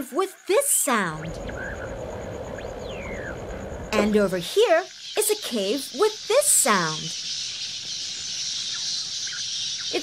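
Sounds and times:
bats squeaking: 0.0 - 10.0.

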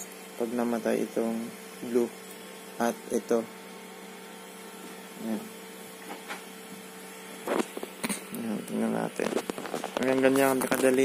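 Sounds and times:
cooling fans humming: 0.0 - 11.0.

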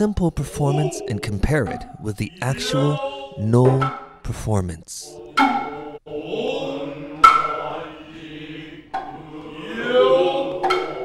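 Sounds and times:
low male voices chanting: 0.1 - 3.9, 5.0 - 11.0.

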